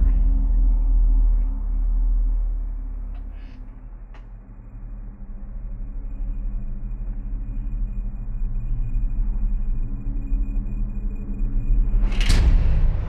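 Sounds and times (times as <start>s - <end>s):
low droning rumble: 0.0s - 13.0s.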